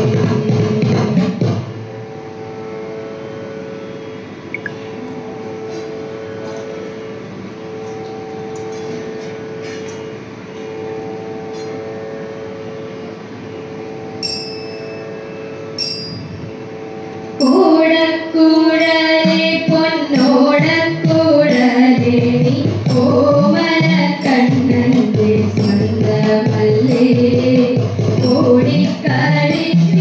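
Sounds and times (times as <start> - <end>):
instrumental drone: 1.4 - 30.0
higher tones: 4.4 - 5.6
short metallic rings: 7.8 - 12.0, 14.2 - 17.7.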